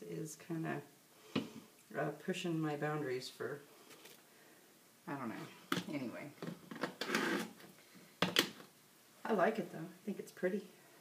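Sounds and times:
soap bars rustling: 0:03.8 - 0:04.3.

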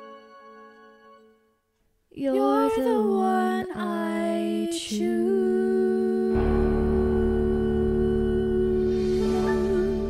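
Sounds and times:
backing track: 0:06.4 - 0:10.0.

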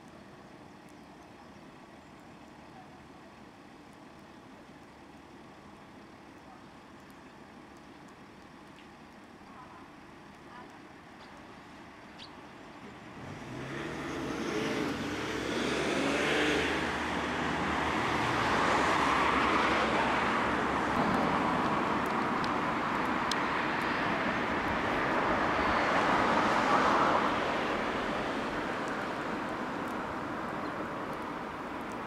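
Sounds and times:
engine low hum: 0:00.0 - 0:32.0
vehicles passing by: 0:09.9 - 0:32.0.

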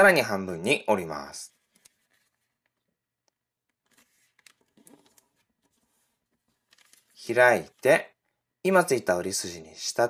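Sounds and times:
paper rustling and creasing: 0:01.5 - 0:02.9, 0:03.7 - 0:07.9.

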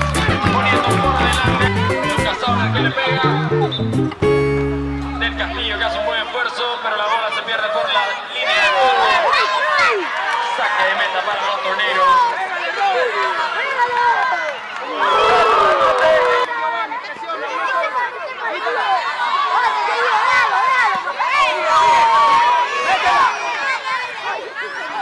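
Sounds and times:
background music: 0:00.0 - 0:06.3
crowd shouting and calling: 0:00.0 - 0:25.0.

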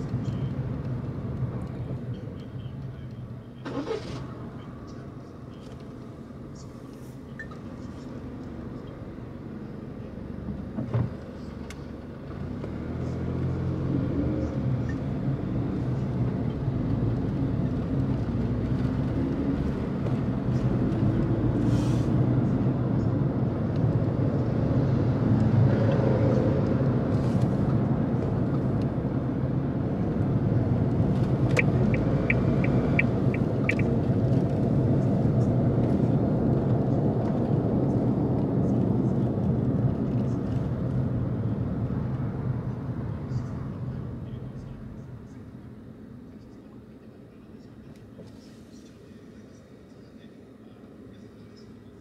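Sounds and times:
car engine and road noise: 0:00.0 - 0:52.0.

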